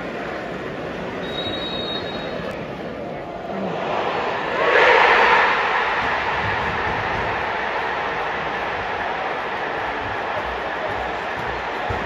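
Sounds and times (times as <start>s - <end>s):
football crowd cheering: 3.4s - 12.0s.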